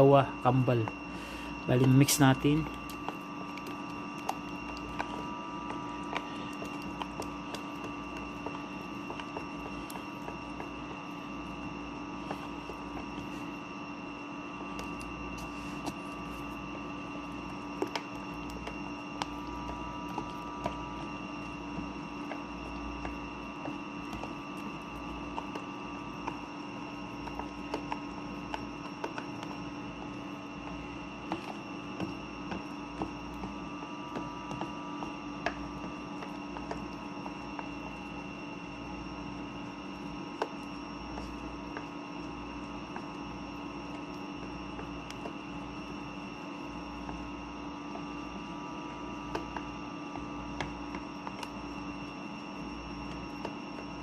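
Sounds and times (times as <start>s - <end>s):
electrical hum with whine: 0.0s - 54.0s
spoon stirring batter: 0.6s - 54.0s.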